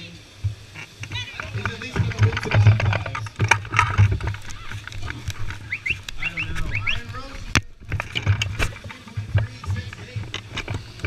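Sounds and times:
close knocks and rustling: 0.4s - 11.0s.

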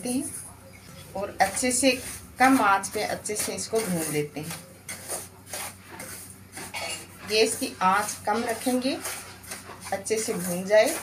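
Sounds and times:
wooden spatula scraping metal pan: 1.2s - 11.0s.

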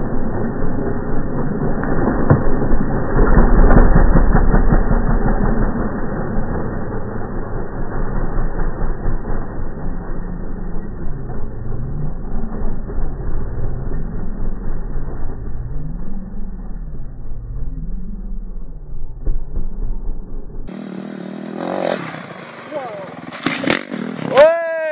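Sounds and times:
dirt bike engine revving: 0.0s - 24.6s.

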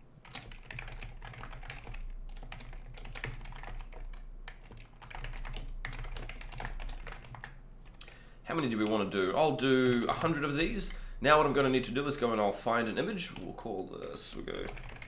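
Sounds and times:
typing on computer keyboard: 0.2s - 8.2s, 13.4s - 15.0s.

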